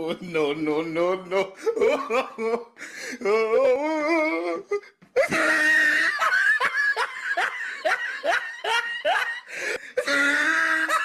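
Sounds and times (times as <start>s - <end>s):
person laughing: 1.6s - 11.0s.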